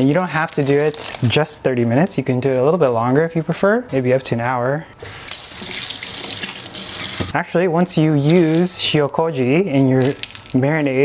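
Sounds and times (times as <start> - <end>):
water splashing into sink: 5.3 - 7.3.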